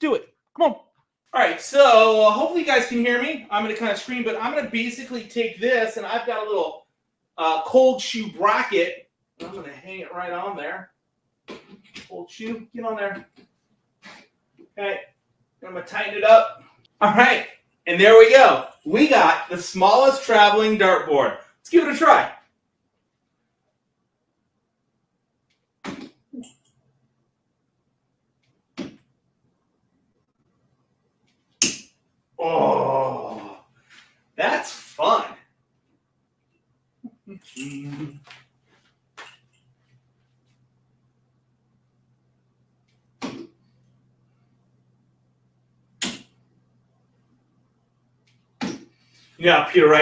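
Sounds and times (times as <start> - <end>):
faint low hum: 1.4 - 50.0
darts hitting dartboard: 25.8 - 26.2, 31.6 - 31.9, 43.2 - 43.6, 46.0 - 46.4, 48.6 - 48.9.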